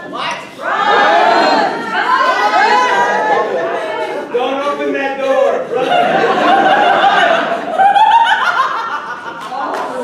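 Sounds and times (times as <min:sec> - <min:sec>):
laughter: 0:05.7 - 0:09.8.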